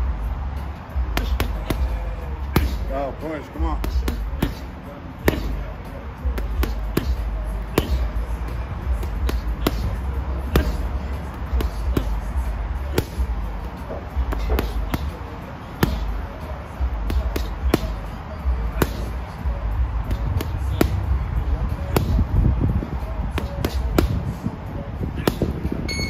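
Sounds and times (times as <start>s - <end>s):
gloves punching heavy bag: 1.0s - 3.0s, 3.6s - 25.7s.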